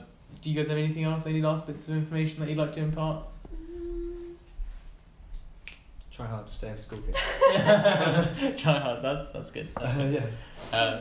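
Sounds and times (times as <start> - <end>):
person humming: 3.4 - 4.7
finger snap: 5.6 - 5.9.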